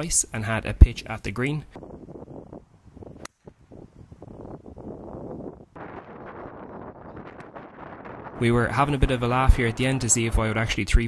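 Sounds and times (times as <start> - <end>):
wind buffeting microphone: 0.7 - 11.0.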